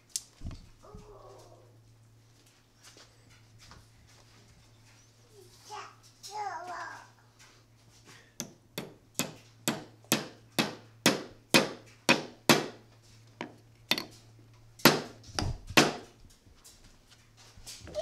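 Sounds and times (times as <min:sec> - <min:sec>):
hammer tapping wedge: 0:08.4 - 0:12.8, 0:13.4 - 0:14.1.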